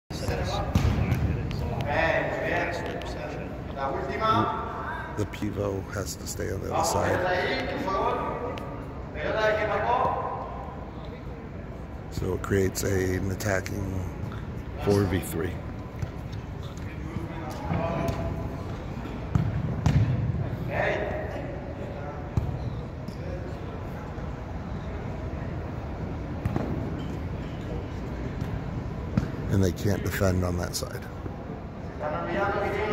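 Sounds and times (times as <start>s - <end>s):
players' voices: 0.1s - 32.9s
ball thudding on indoor court: 0.2s - 1.9s, 19.3s - 20.3s
ball kicked and bouncing: 0.3s - 1.6s.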